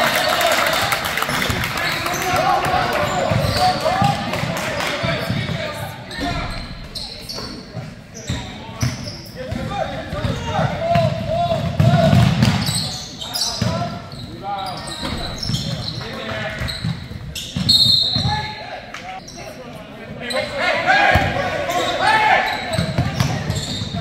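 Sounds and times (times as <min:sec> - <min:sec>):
indistinct voices: 0:01.2 - 0:08.9
sneakers squeaking: 0:01.3 - 0:04.3, 0:05.0 - 0:24.0.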